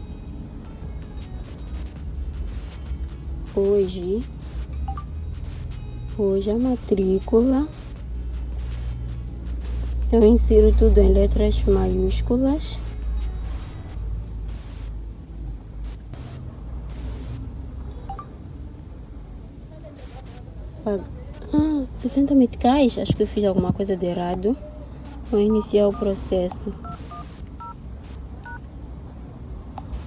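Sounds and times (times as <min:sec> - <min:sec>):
low vehicle rumble: 0:00.0 - 0:30.0
keypad beep: 0:04.8 - 0:05.1, 0:18.1 - 0:18.3, 0:25.3 - 0:27.8
short bursts of hiss: 0:07.7 - 0:10.1, 0:15.9 - 0:17.4.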